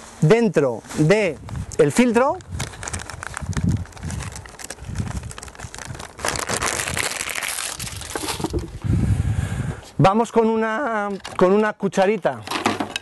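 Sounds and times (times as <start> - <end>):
plastic bag crinkling: 2.0 - 8.8.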